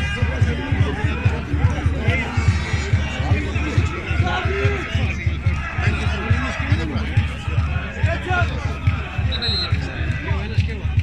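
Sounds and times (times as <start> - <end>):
bass drum beat: 0.0 - 11.0
supporters chanting: 0.0 - 11.0
short high whistle: 9.3 - 9.8.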